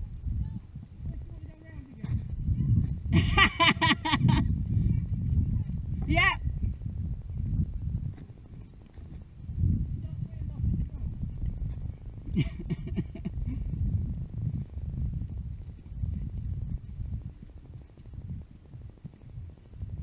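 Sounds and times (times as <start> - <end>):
microphone movement rumble: 0.0 - 20.0.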